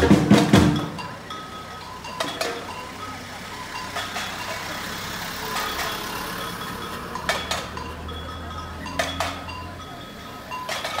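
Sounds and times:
sharp percussion clinks: 0.0s - 11.0s
truck engine rumbling past: 0.0s - 11.0s.

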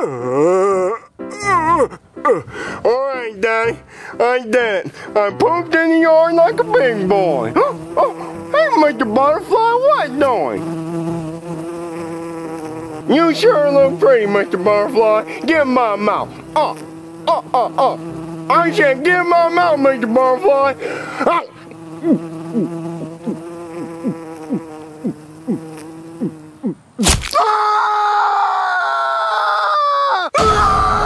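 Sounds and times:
short falling vocal sound: 0.0s - 2.5s
bee buzzing drone: 3.7s - 27.2s.

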